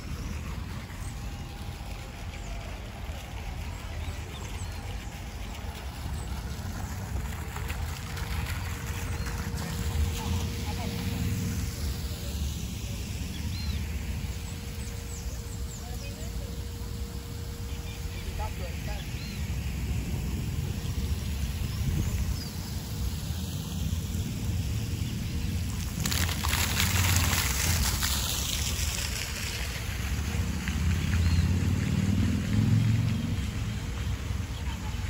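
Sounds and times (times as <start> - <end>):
fountain water splashing into pool: 0.0 - 35.0.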